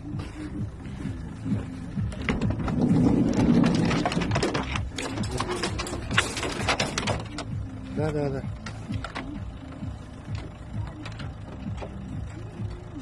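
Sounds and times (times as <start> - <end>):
van door opening: 1.5 - 12.6
metal dog cages rattling: 2.1 - 7.6.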